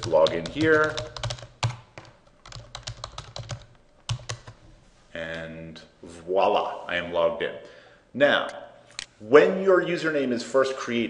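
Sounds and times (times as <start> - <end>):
computer keyboard typing: 0.0 - 4.6.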